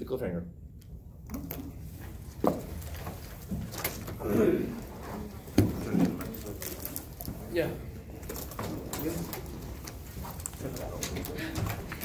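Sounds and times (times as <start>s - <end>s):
murmur of voices: 4.1s - 12.0s.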